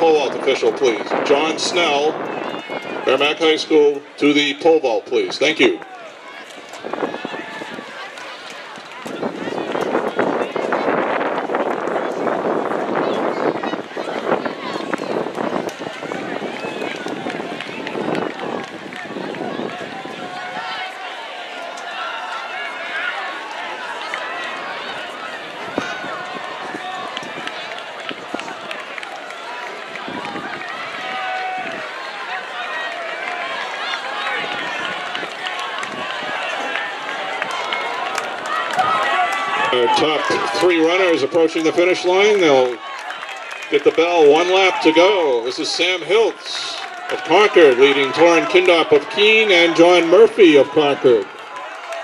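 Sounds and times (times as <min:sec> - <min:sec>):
spectators shouting and cheering: 0:00.0 - 0:52.0.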